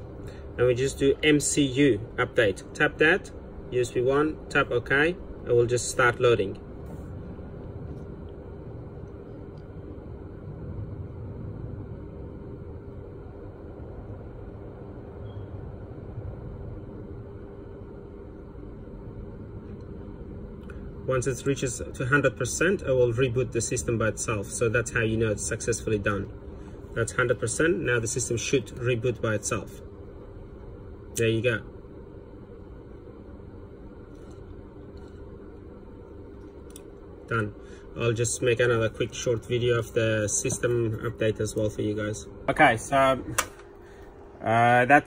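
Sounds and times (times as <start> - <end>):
faint constant hum: 0.0 - 45.0
low background rumble: 0.0 - 45.0.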